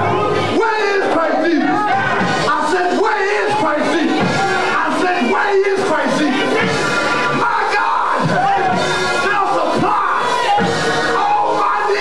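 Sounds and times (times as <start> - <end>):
church music: 0.0 - 12.0
congregation voices: 0.0 - 12.0
preacher calling through microphone: 0.0 - 12.0.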